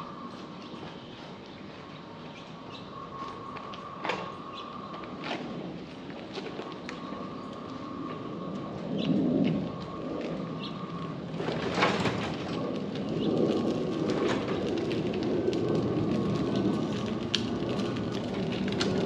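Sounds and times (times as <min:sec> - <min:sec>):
trailer wheels rumbling on pavement: 0:00.0 - 0:19.0.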